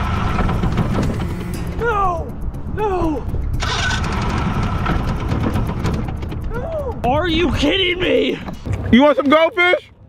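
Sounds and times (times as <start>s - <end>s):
outboard motor running roughly: 0.0s - 2.0s, 3.5s - 6.7s.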